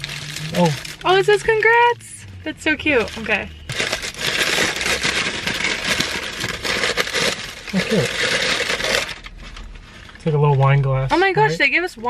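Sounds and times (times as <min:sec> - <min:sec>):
paper wrapping crinkling: 0:00.0 - 0:01.8, 0:02.9 - 0:10.6.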